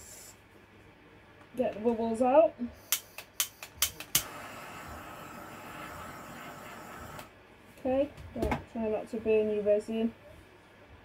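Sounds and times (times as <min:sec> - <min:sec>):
gas torch flame hissing: 0:00.0 - 0:00.4, 0:02.8 - 0:07.3
gas torch igniter clicks: 0:02.9 - 0:04.4.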